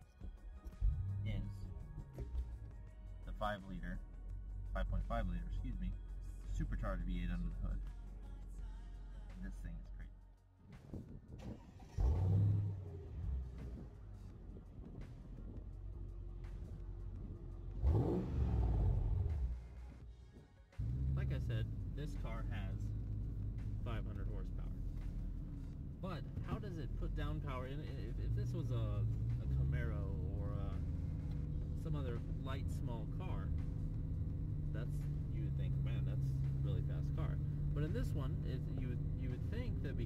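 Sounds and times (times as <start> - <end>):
car engine revving: 0.8 - 2.6, 11.4 - 20.0, 20.8 - 40.0
man talking: 1.1 - 1.7, 3.2 - 4.0, 4.7 - 7.8, 9.4 - 10.1, 21.1 - 22.9, 23.7 - 24.8, 26.0 - 31.0, 31.7 - 33.6, 34.6 - 40.0.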